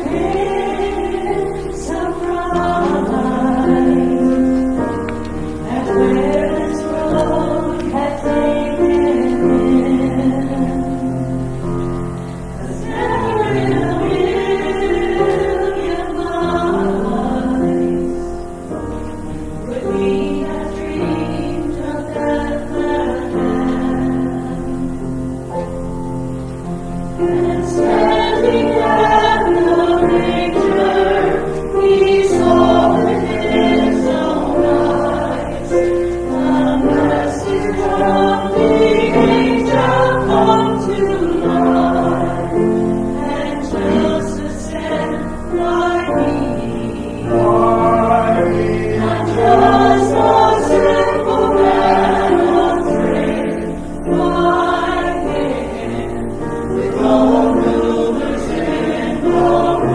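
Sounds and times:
small choir singing: 0:00.0 - 0:59.9.

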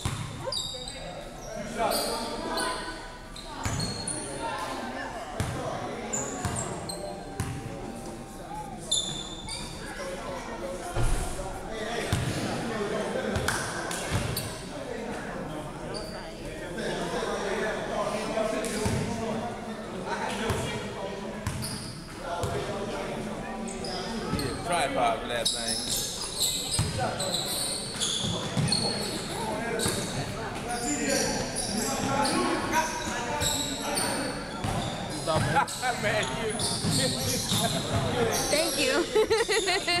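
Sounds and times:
sneakers squeaking on court: 0:00.0 - 0:04.4, 0:05.4 - 0:08.2, 0:08.8 - 0:10.1, 0:25.5 - 0:38.8.

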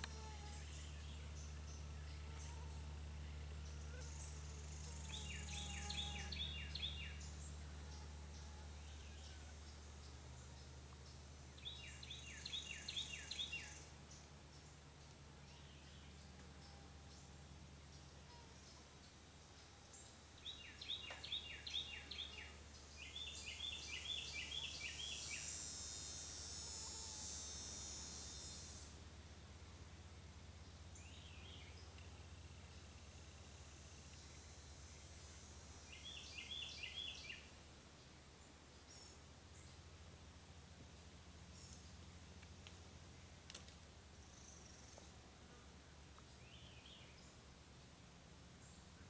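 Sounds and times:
high insect buzz: 0:00.0 - 0:14.3, 0:19.9 - 0:29.9, 0:32.4 - 0:37.6
songbird singing: 0:00.0 - 0:28.8, 0:30.1 - 0:40.6, 0:45.8 - 0:47.6
soft background hiss: 0:00.0 - 0:49.0
steady low hum: 0:00.0 - 0:49.0.

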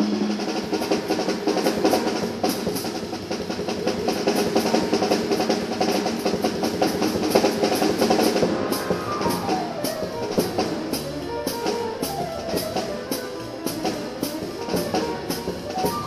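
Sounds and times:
drums: 0:00.0 - 0:16.0
piano: 0:00.0 - 0:16.0
double bass: 0:08.0 - 0:16.0.

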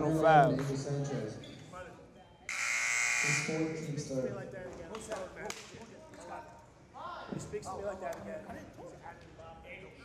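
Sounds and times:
gym buzzer: 0:02.5 - 0:03.8.

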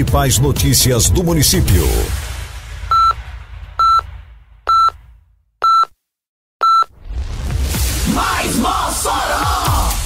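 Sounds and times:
music: 0:00.0 - 0:04.5, 0:07.0 - 0:10.0
short electronic beeps: 0:02.9 - 0:03.2, 0:03.8 - 0:04.1, 0:04.7 - 0:05.0, 0:05.6 - 0:06.0, 0:06.6 - 0:06.9.

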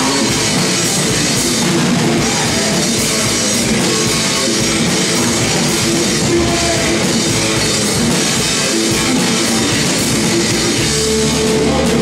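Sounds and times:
drum kit: 0:00.0 - 0:12.0
electric guitars: 0:00.0 - 0:12.0.

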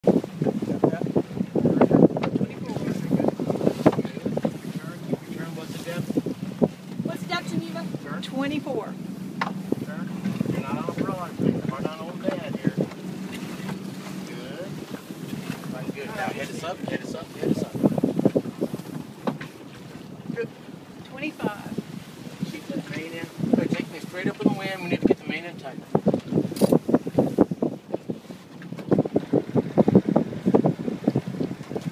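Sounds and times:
wind buffeting microphone: 0:00.0 - 0:31.9.

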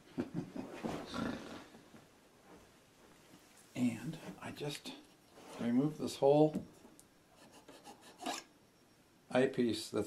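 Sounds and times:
man chuckling: 0:00.0 - 0:01.2.

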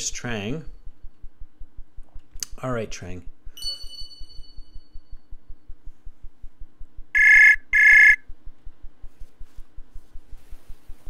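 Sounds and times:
faint low pulsing: 0:00.0 - 0:11.0
outgoing call ringing tone: 0:07.2 - 0:08.2.

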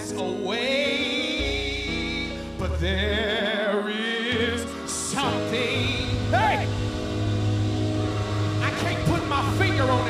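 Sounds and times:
man singing: 0:00.0 - 0:06.8, 0:08.6 - 0:10.0
gospel music sustained chord: 0:00.0 - 0:10.0.

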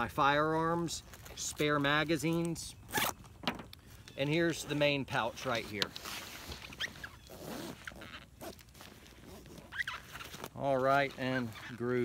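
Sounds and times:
bag fabric rustling: 0:04.5 - 0:12.0
zipper rasp: 0:06.2 - 0:11.8.

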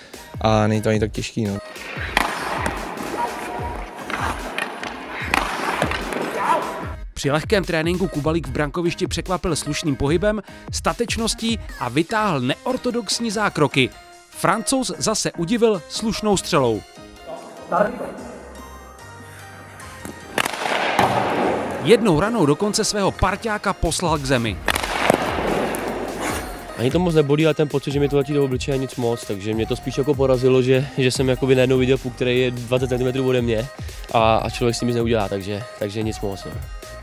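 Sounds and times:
background music with beat: 0:00.0 - 0:14.4, 0:15.0 - 0:37.0
hockey stick hitting puck: 0:01.7 - 0:06.9, 0:20.0 - 0:22.3, 0:24.6 - 0:26.7
ice skates scraping on ice: 0:01.7 - 0:06.9, 0:24.6 - 0:26.8.

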